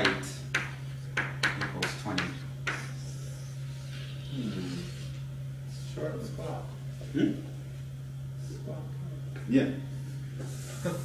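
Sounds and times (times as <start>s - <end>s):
chalk tapping on blackboard: 0.0s - 3.0s
low room hum: 0.0s - 11.0s.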